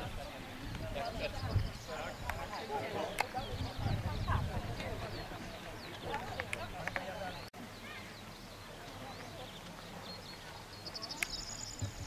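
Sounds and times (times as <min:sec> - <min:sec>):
birds chirping: 0:00.0 - 0:12.0
people chattering: 0:00.0 - 0:12.0.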